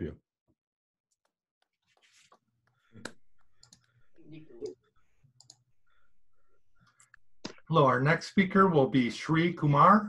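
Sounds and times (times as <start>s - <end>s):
faint clicks: 5.4s - 5.6s.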